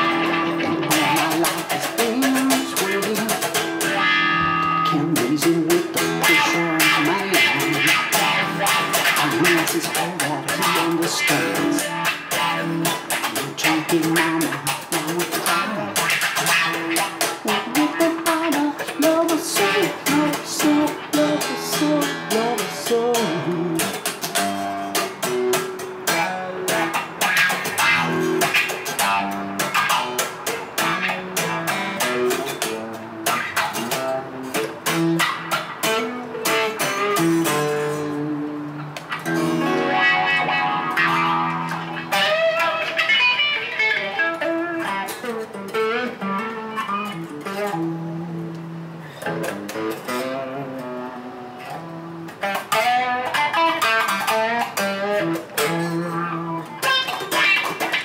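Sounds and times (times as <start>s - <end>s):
man singing: 0.0s - 4.0s, 4.6s - 25.0s, 31.2s - 41.3s, 45.8s - 56.9s
electric guitar playing: 0.0s - 58.0s.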